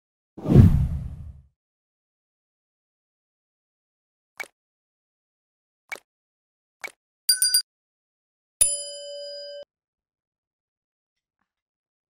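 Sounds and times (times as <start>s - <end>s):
deep whoosh: 0.4s - 1.4s.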